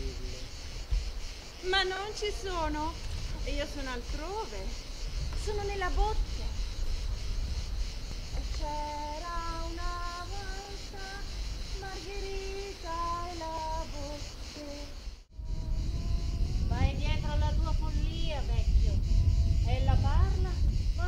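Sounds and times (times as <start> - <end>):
high voice singing: 8.4 - 17.2
low rumble: 15.1 - 21.0.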